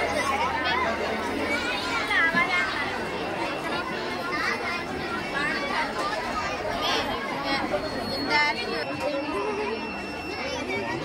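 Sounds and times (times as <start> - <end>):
children chattering: 0.0 - 11.0.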